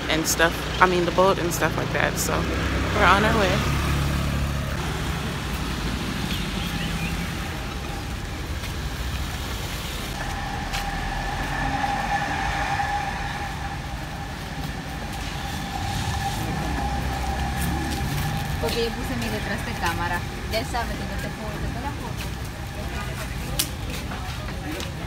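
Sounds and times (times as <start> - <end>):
traffic rumble: 0.0 - 25.0
steady high-pitched tone: 10.1 - 22.3.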